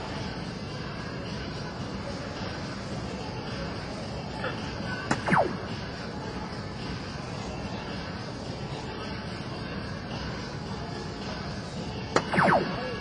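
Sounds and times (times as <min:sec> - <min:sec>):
hall background noise: 0:00.0 - 0:13.0
falling electronic hit tone: 0:05.1 - 0:05.7, 0:12.2 - 0:13.0.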